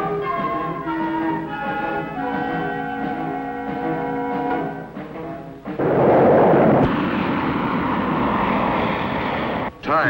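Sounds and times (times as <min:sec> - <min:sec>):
jet engine rushing: 0:05.7 - 0:09.7.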